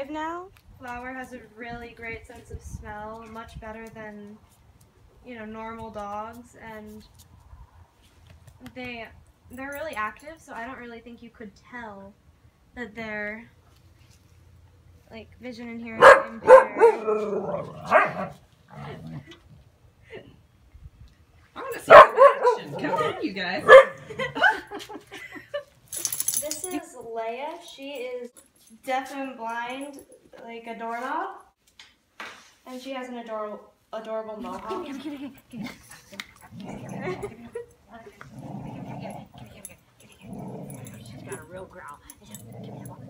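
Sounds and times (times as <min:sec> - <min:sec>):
dog barking: 0:16.0 - 0:18.3, 0:21.8 - 0:24.1
dogs growling in play: 0:16.8 - 0:19.6, 0:22.4 - 0:24.4, 0:35.3 - 0:43.0
woman laughing: 0:18.9 - 0:20.4, 0:22.5 - 0:25.8, 0:34.4 - 0:38.2
girl laughing: 0:23.9 - 0:25.8.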